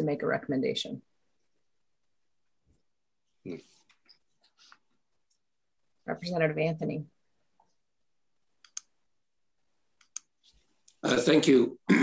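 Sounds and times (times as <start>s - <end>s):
faint clicks: 8.6s - 8.9s.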